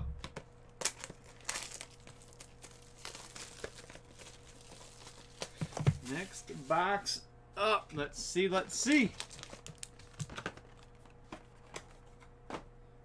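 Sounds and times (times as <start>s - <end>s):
plastic shrink wrap crinkling: 0.8s - 6.8s, 8.8s - 12.2s.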